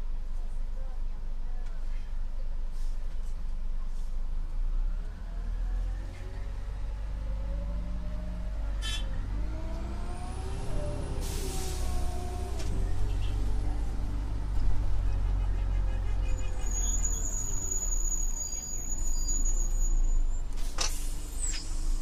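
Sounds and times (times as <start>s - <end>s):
bus engine idling: 6.3s - 22.0s
thin high squeal: 16.2s - 20.4s.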